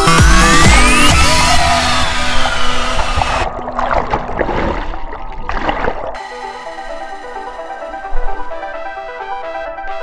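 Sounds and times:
muffled underwater bubbling: 0:01.0 - 0:06.2.

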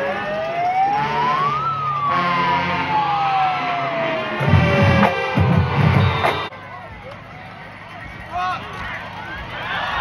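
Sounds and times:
siren wailing: 0:00.0 - 0:06.5.

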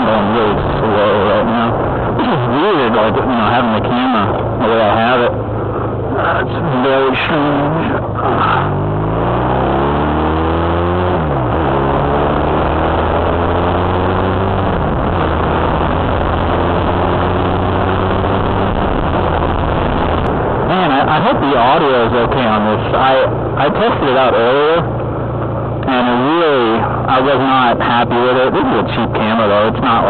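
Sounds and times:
motorcycle engine accelerating: 0:00.0 - 0:30.0.

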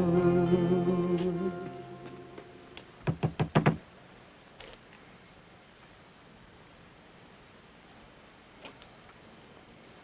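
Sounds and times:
knuckles knocking on wooden door: 0:03.0 - 0:03.8.

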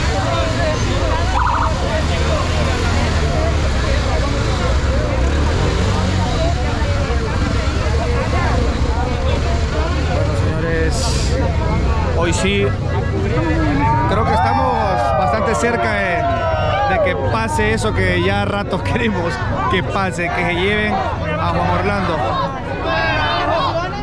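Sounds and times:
motorcycle engines running low: 0:00.0 - 0:15.1
crowd shouting and talking: 0:00.0 - 0:24.0.

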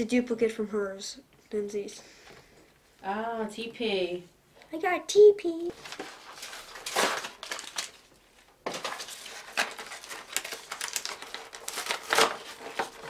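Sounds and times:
paper rustling and crinkling: 0:05.7 - 0:13.0.

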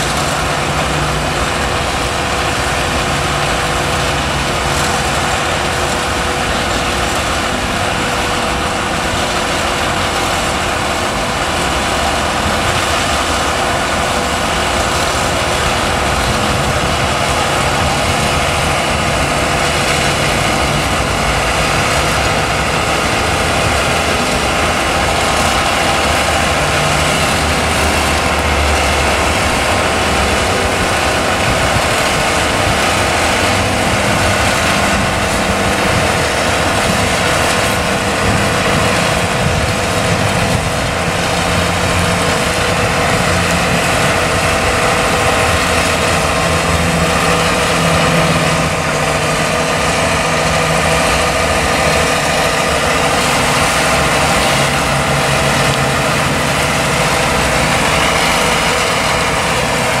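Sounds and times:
work train engine running: 0:00.0 - 1:00.0.

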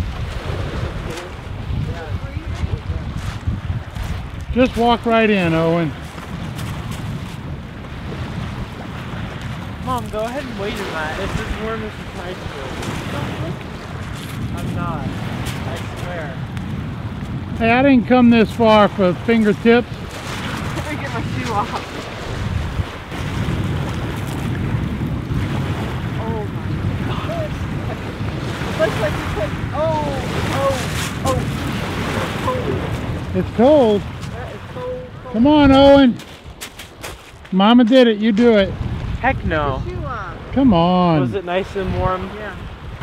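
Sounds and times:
waves washing onto pebbles: 0:00.0 - 0:39.2
wind rumbling on microphone: 0:00.0 - 0:43.0.

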